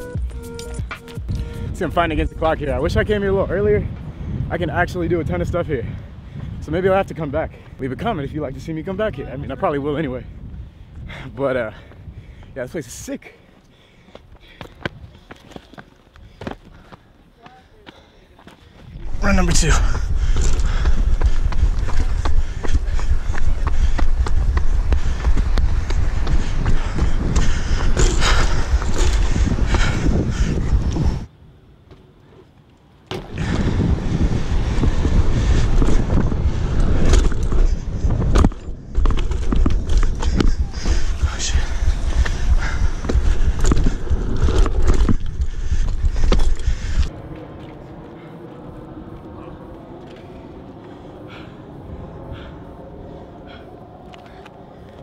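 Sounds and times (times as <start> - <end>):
wind on microphone: 0.8 - 12.6, 18.8 - 31.3, 33.1 - 55.0
bike tyres rolling on concrete: 18.4 - 51.5
bike landing impact: 33.1 - 34.2.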